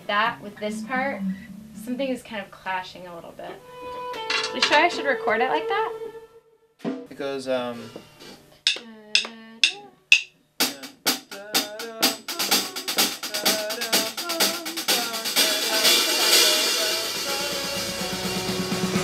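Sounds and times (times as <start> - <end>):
rock music with drums: 8.6 - 19.0.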